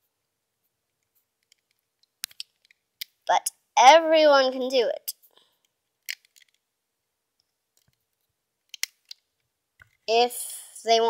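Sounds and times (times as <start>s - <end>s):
rubber bands clicking on pegs: 0.9s - 3.3s, 5.6s - 6.6s, 7.4s - 10.1s.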